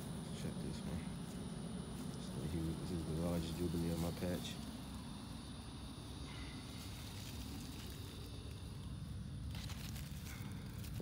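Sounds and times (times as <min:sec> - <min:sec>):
steady low rumble: 0:00.0 - 0:11.0
leaves and vines rustling: 0:01.2 - 0:05.0, 0:06.2 - 0:11.0.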